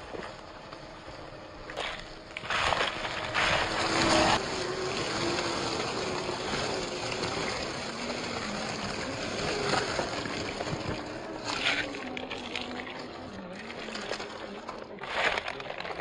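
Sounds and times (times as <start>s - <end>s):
rustling and crunching leaves: 0.0s - 16.0s
toy car motor whine: 0.0s - 16.0s.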